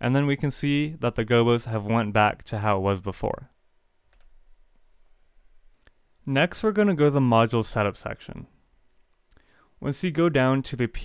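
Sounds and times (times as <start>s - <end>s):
computer mouse clicks: 4.1s - 4.4s.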